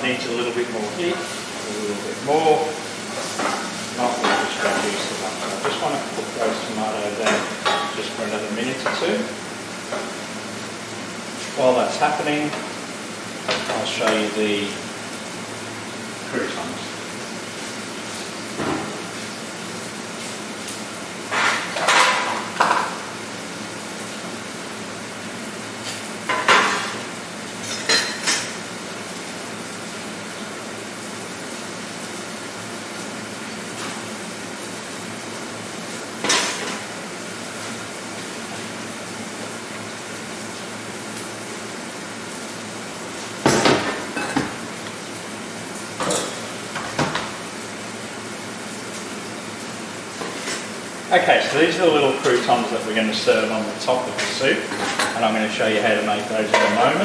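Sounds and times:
metal trays and utensils clattering: 0:03.3 - 0:09.2, 0:46.0 - 0:47.3, 0:54.1 - 0:55.4, 0:56.4 - 0:57.0.

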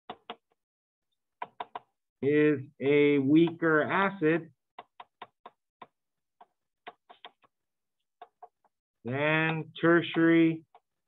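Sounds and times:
stylus tapping on tablet screen: 0:00.1 - 0:00.6, 0:01.3 - 0:02.0, 0:03.4 - 0:03.8, 0:04.6 - 0:11.0.

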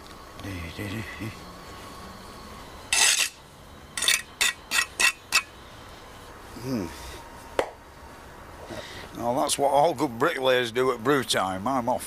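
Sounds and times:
trowel scraping and striking brick: 0:02.9 - 0:03.4, 0:04.0 - 0:05.5.

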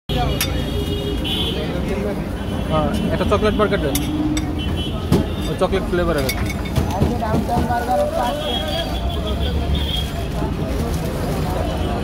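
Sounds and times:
low traffic rumble: 0:00.1 - 0:12.0
people talking: 0:00.1 - 0:12.0.

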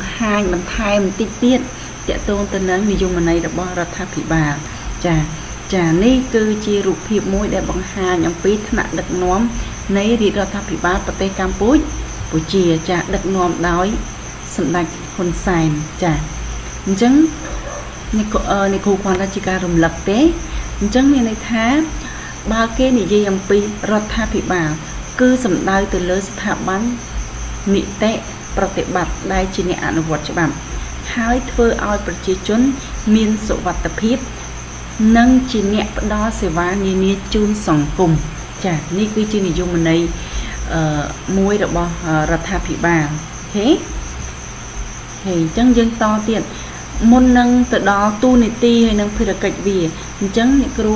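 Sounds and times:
person speaking: 0:00.0 - 0:14.0, 0:14.6 - 0:27.0.

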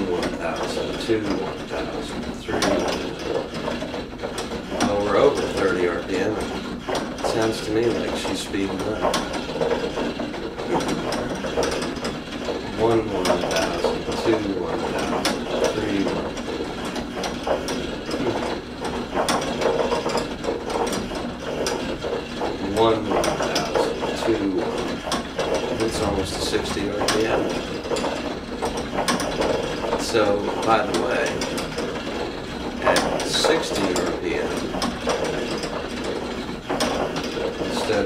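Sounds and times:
ratcheting gear-like mechanical clatter: 0:00.0 - 0:38.0.

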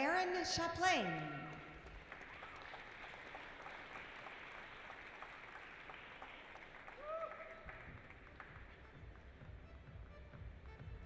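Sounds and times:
small crowd applauding: 0:01.4 - 0:09.8.

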